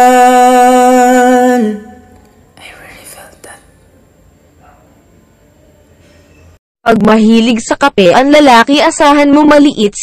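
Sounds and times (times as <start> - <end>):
faint whispered voice: 2.6 - 3.8.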